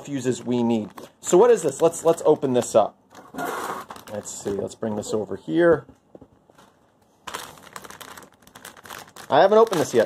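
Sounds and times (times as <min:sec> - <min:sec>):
plastic bag crinkling: 0:00.0 - 0:05.3, 0:06.4 - 0:10.0.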